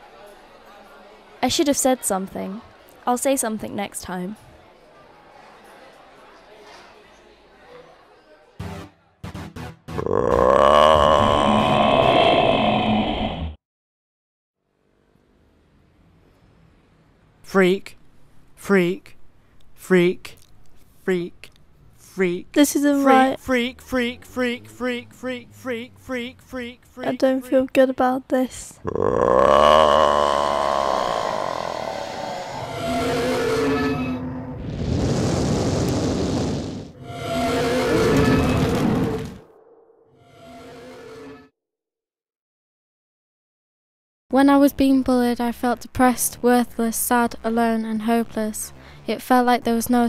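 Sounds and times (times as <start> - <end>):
monster roar: 10.0 - 13.6, 28.8 - 36.9.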